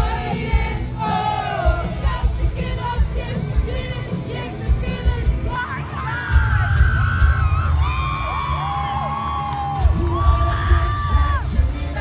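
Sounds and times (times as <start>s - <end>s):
live rock band playing: 0.0s - 12.0s
crowd whooping and yelling: 5.5s - 12.0s.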